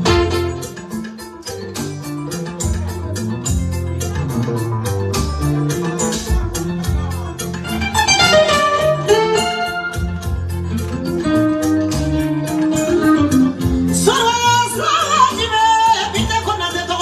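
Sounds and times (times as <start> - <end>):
live band over loudspeakers: 0.0 - 1.0, 3.0 - 16.8.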